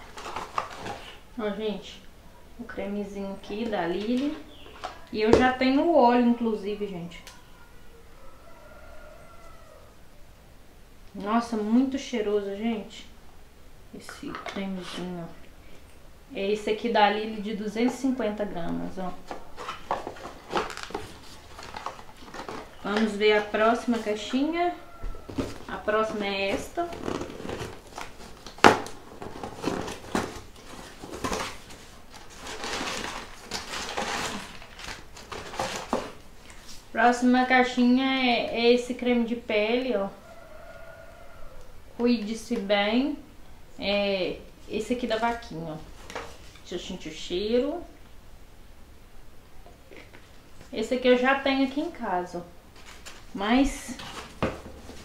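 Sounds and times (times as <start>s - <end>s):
paper rustling and crinkling: 0.0s - 1.2s, 19.1s - 24.4s, 25.2s - 36.9s, 52.7s - 55.0s.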